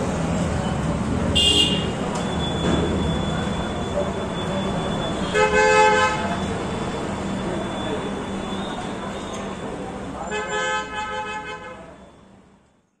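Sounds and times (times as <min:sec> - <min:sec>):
horn honking: 0:01.3 - 0:02.1, 0:05.0 - 0:06.5, 0:10.2 - 0:12.0.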